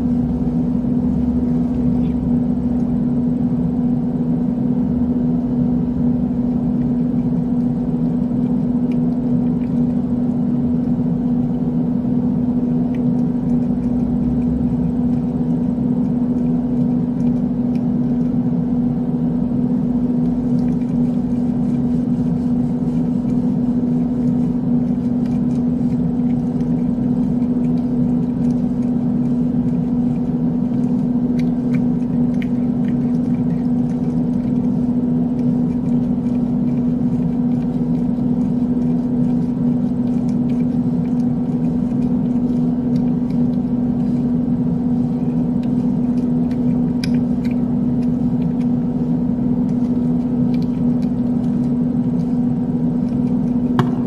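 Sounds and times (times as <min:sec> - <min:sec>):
steady machine hum: 0:00.0 - 0:54.0.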